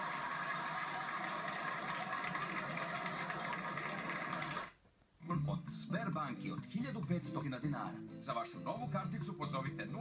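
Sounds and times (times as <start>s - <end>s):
applause from television speaker: 0.0s - 4.8s.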